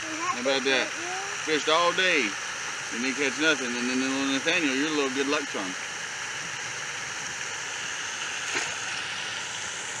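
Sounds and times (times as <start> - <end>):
river water flowing: 6.2 - 10.0.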